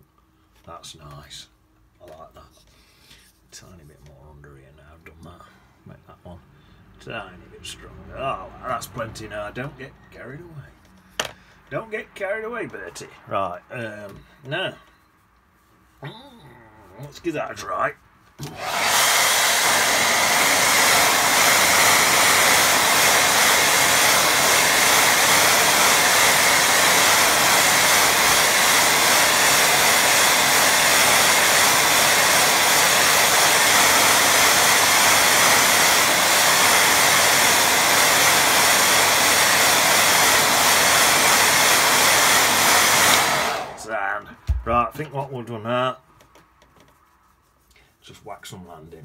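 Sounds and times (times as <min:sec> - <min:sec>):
hair dryer running: 0:11.2 - 0:11.4, 0:18.4 - 0:44.7.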